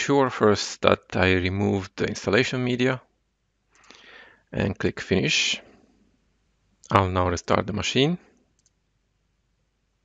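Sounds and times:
person speaking: 0.0s - 3.1s, 3.8s - 5.8s, 6.8s - 8.3s
computer mouse click: 8.5s - 8.8s.

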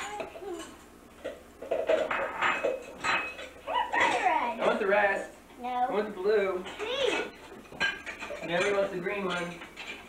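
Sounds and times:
plates and cutlery clinking: 0.0s - 5.3s, 6.2s - 10.0s.

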